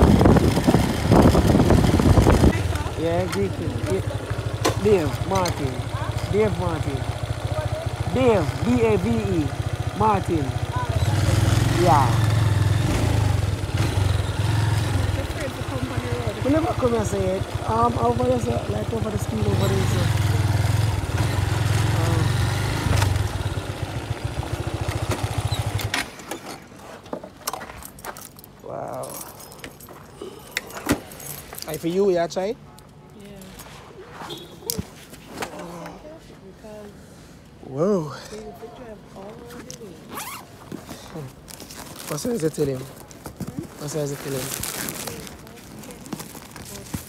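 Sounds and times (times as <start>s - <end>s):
motorcycle engine: 0.0s - 26.7s
keys jangling: 27.6s - 32.0s.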